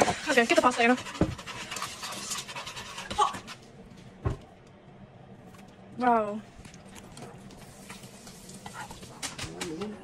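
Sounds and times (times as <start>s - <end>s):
chopsticks scraping sauce in pan: 0.0s - 3.6s.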